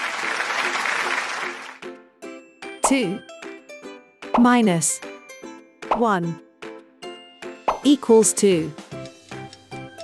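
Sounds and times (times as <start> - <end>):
applause: 0.0 - 1.9
light background music: 0.6 - 10.0.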